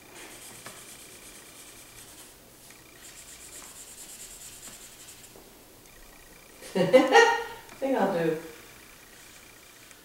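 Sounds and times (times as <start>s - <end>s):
marker scribbling on paper: 0.2s - 2.4s, 3.0s - 5.3s.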